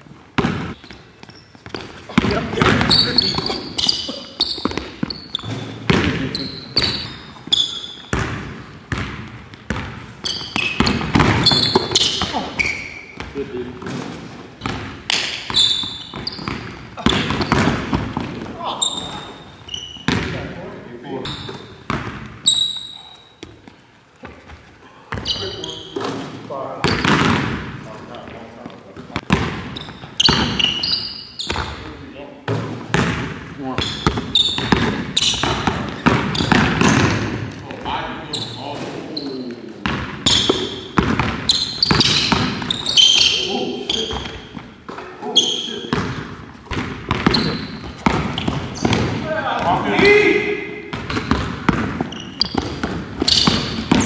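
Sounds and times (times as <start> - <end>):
basketball bouncing on wood floor: 0.4 - 20.5, 21.3 - 22.8, 23.4 - 26.2, 26.8 - 28.4, 29.0 - 30.8, 31.4 - 31.9, 32.5 - 37.9, 39.8 - 43.4, 45.9 - 49.8, 50.9 - 54.0
sneaker squeaks: 0.4 - 20.6, 21.2 - 27.5, 28.2 - 54.0.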